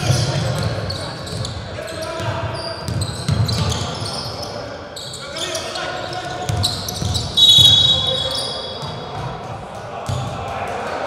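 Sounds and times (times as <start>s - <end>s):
murmur of voices: 0.0s - 11.0s
referee's whistle blast: 7.0s - 8.8s.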